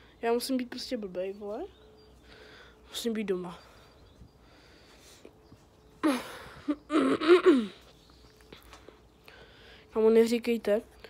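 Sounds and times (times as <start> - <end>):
soft breathing: 2.2 - 6.6, 7.8 - 10.0.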